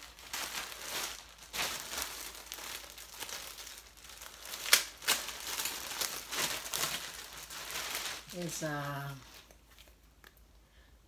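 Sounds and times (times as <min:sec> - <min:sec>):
packaging crinkling and rustling: 0:00.0 - 0:10.2.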